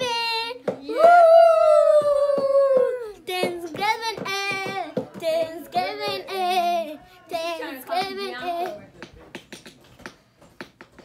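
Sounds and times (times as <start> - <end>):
girl singing: 0.0 - 8.8.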